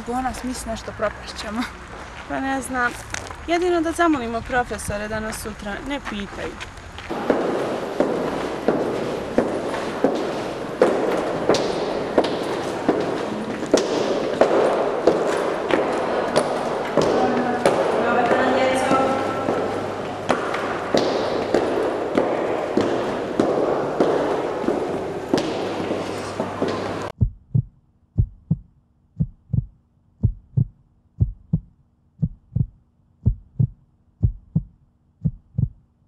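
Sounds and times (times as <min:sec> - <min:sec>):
hard-soled footsteps: 0:00.2 - 0:35.8
murmur of voices: 0:11.2 - 0:20.9.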